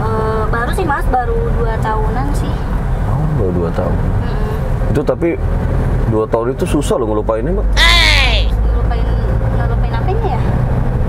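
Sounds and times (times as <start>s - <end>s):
car engine rumble and road noise: 0.0s - 11.0s.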